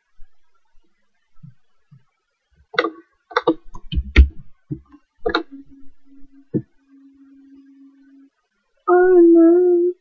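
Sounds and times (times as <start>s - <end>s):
faint low steady hum: 0.0s - 10.0s
sharp clicks and knocks: 1.4s - 5.6s.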